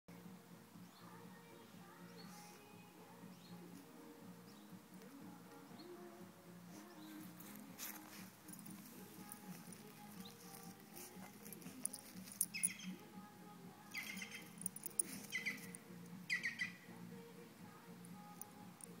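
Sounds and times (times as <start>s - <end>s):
dog rolling in grass rustling: 7.2s - 12.4s.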